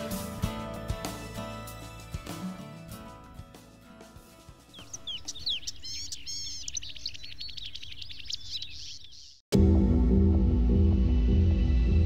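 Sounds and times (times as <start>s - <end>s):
background music: 0.0s - 5.6s, 9.5s - 12.0s
birds chirping and trilling: 4.7s - 9.4s.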